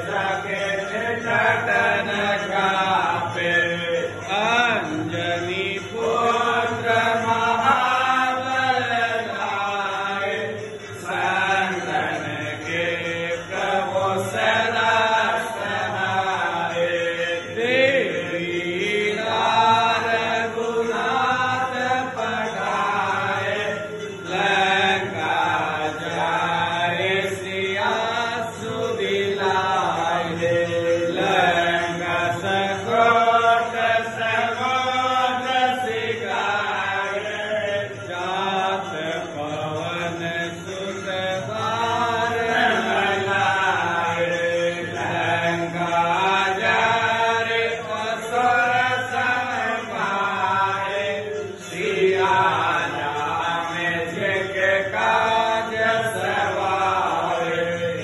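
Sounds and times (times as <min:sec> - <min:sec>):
voices chanting a hymn: 0:00.0 - 0:58.0.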